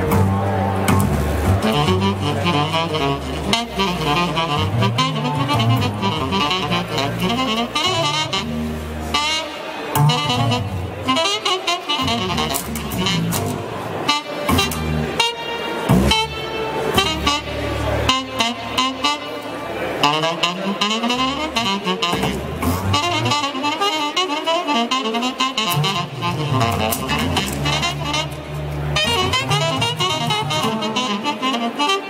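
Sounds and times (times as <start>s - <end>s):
low bass note: 0.0s - 9.1s
saxophone-like synth lead: 0.0s - 32.0s.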